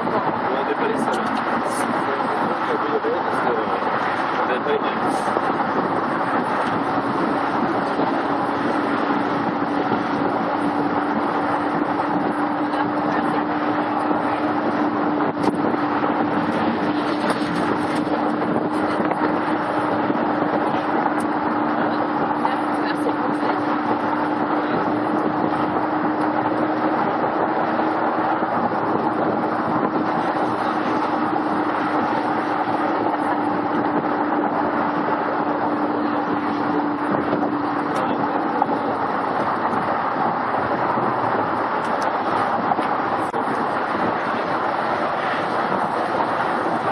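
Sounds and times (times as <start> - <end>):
wind and road noise: 0.0 - 46.9.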